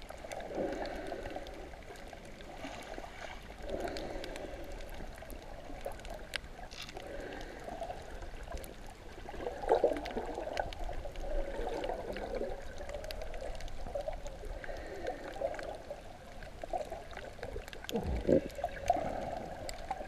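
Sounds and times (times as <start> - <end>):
muffled underwater gurgling: 0.0 - 20.0
faint clicks: 3.2 - 9.0, 9.7 - 20.0.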